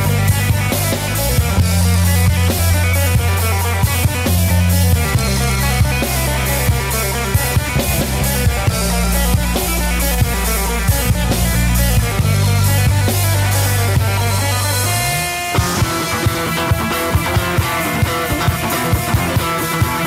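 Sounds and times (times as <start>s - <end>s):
live instrumental rock band: 0.0s - 20.0s.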